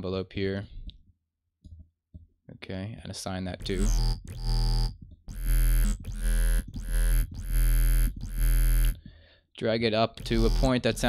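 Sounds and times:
synthesizer bass notes: 0:03.6 - 0:09.0, 0:10.2 - 0:11.0.

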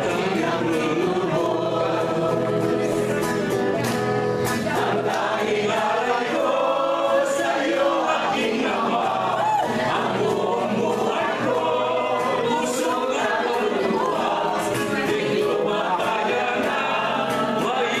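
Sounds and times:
people singing a hymn: 0:00.0 - 0:18.0.

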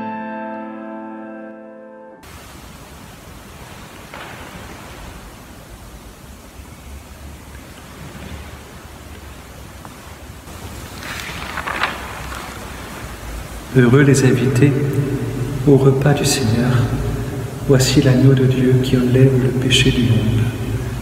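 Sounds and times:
room noise hiss: 0:02.2 - 0:21.0.

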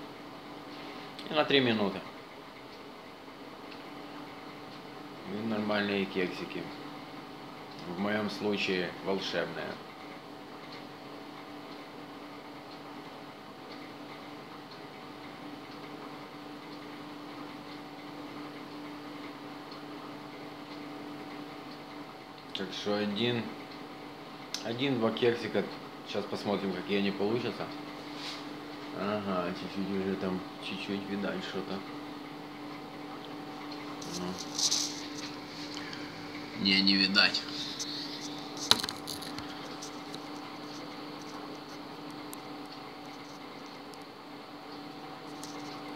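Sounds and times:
microwave oven humming: 0:00.0 - 0:45.9.

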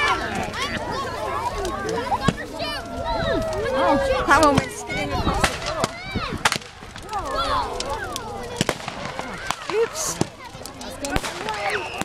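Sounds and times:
fireworks bangs: 0:08.5 - 0:10.4, 0:11.0 - 0:12.0.

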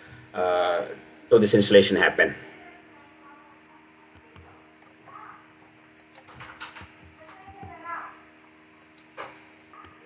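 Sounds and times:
small clicks and taps: 0:06.0 - 0:07.8.

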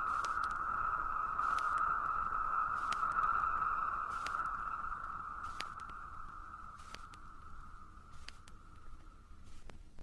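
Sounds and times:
sharp clicks: 0:00.1 - 0:00.6, 0:01.4 - 0:01.9.

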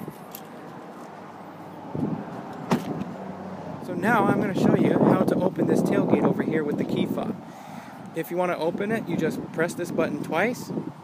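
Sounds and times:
handling and movement noise: 0:00.0 - 0:03.2
truck door shutting: 0:02.0 - 0:03.2.

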